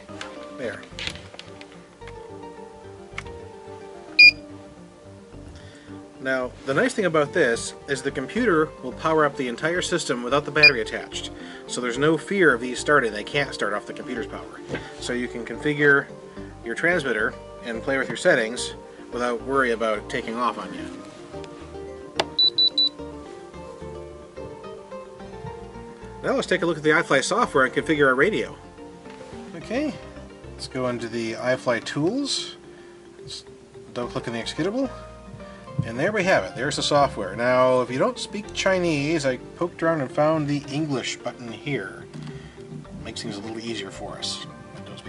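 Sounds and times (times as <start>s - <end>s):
background music with steady tones: 0.0s - 45.0s
high electronic beep: 4.2s - 4.4s, 22.4s - 23.0s.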